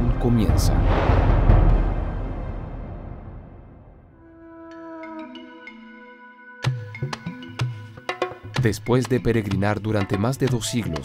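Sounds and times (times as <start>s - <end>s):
deep low rumble: 0.0s - 4.1s
dramatic trailer music: 0.0s - 7.7s.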